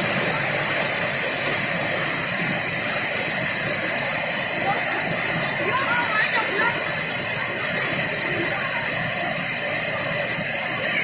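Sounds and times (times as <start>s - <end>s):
floodwater rushing: 0.0s - 11.0s.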